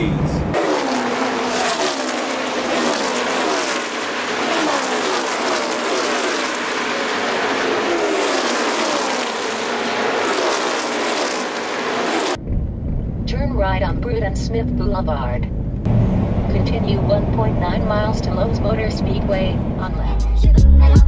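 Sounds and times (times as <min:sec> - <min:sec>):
road noise: 0:00.0 - 0:20.3
in-car sound: 0:00.0 - 0:21.0
engine tones sliding down in pitch: 0:00.2 - 0:12.4.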